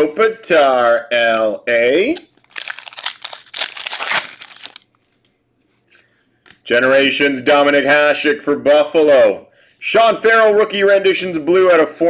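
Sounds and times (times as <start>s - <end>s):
foil wrapper crinkling: 2.0s - 5.2s.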